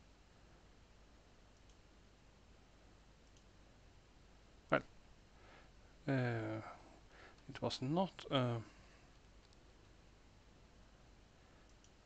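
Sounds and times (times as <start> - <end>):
room hiss: 0.0 - 12.0
computer mouse clicks: 1.5 - 1.8, 3.2 - 3.5, 9.4 - 9.7, 11.6 - 12.0.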